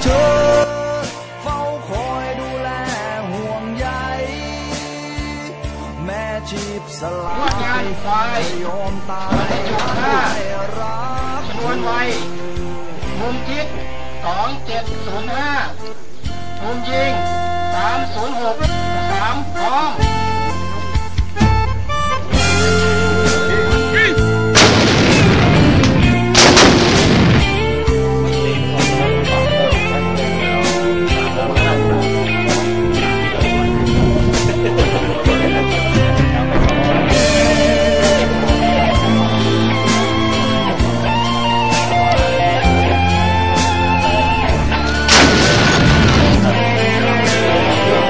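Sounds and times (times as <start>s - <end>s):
artillery gun blasts: 24.6s - 28.1s, 44.9s - 46.5s.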